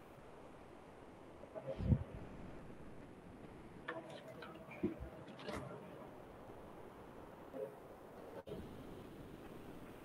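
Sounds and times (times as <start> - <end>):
online call background hiss: 0.0 - 10.0.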